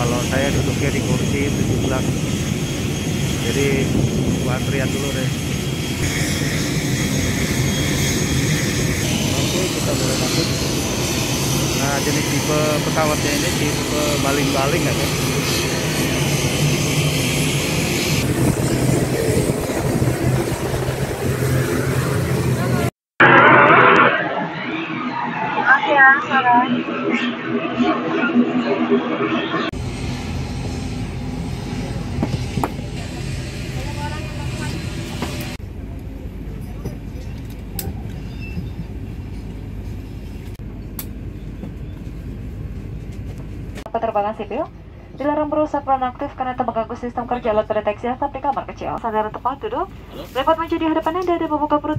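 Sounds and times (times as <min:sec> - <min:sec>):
turboprop engine running: 0:00.0 - 0:51.9.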